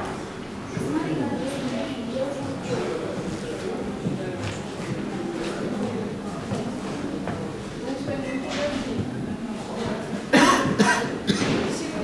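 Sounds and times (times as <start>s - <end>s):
murmur of voices: 0.0s - 12.0s
person coughing: 10.3s - 11.6s.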